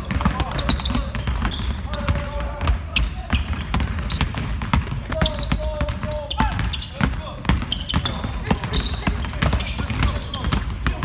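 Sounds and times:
basketballs dribbling on hardwood: 0.0 - 11.0.

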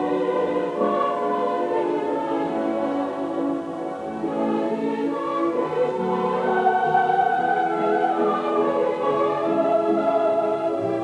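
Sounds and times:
choir singing long notes: 0.0 - 11.0
musical accompaniment: 0.0 - 11.0.

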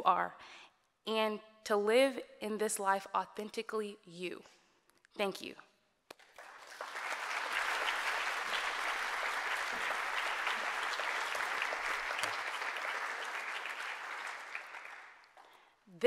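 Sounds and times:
audience applauding: 6.2 - 15.4.

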